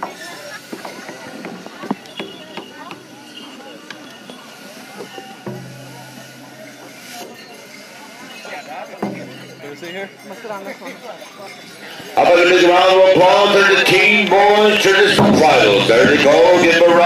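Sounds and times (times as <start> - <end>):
crowd murmur and chatter: 0.0 - 17.0
clinks and taps: 9.0 - 9.6.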